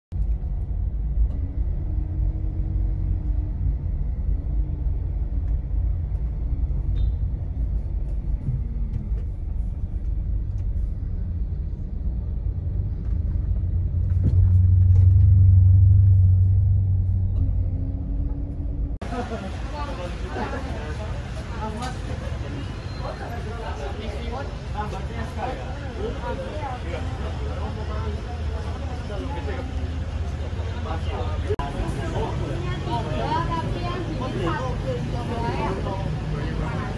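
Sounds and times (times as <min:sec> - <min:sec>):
car rumble inside cabin: 0:00.1 - 0:19.0
voices outdoors: 0:19.0 - 0:36.9.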